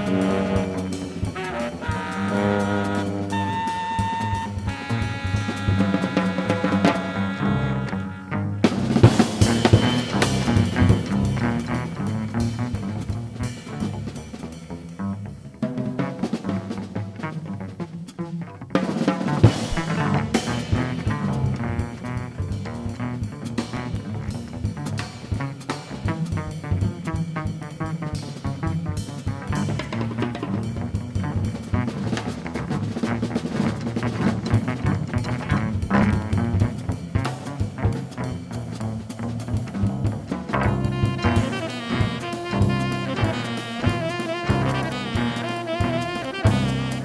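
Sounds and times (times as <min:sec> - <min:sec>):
drum kit: 0:00.0 - 0:47.0
tuba: 0:00.0 - 0:47.0.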